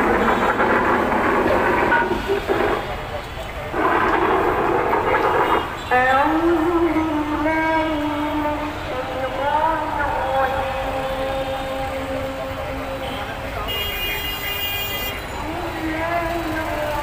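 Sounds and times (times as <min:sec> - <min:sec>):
city traffic din: 0:00.0 - 0:17.0
voices: 0:00.0 - 0:17.0
car horn blasts: 0:13.7 - 0:15.2.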